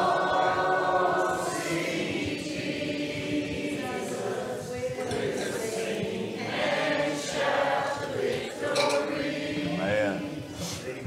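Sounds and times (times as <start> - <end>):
choir singing long notes: 0.0 - 10.6.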